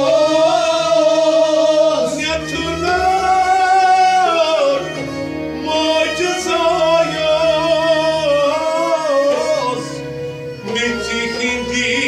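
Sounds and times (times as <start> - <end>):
man singing long notes: 0.0 - 12.0.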